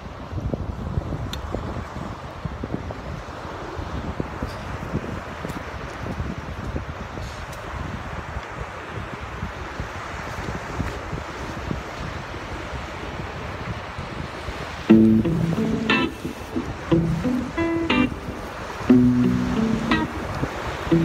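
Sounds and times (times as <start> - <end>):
wind on microphone: 0.0 - 21.0
breaking surf: 14.4 - 21.0
plucked guitar music: 14.9 - 21.0.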